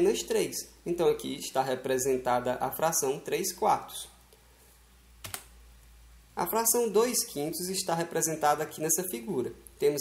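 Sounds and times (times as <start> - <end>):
computer mouse clicks: 5.2 - 5.5.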